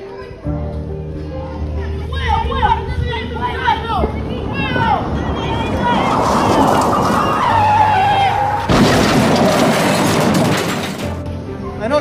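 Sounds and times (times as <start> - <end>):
car tyres screeching: 3.3 - 10.9.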